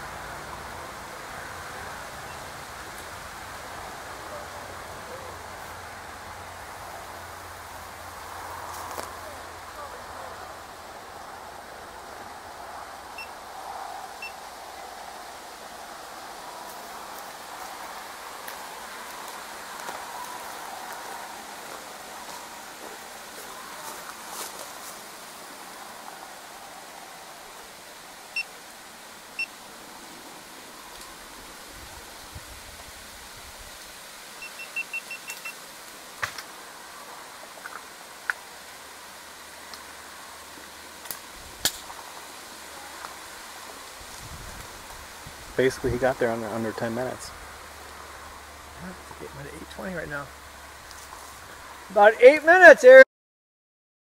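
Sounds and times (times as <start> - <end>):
outdoor background hiss: 0.0 - 53.0
short electronic beeps: 34.4 - 35.6.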